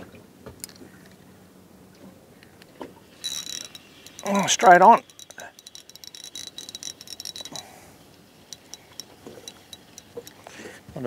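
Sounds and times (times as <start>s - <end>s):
fishing reel ticking: 3.2s - 10.5s
scattered clicks: 3.2s - 10.5s.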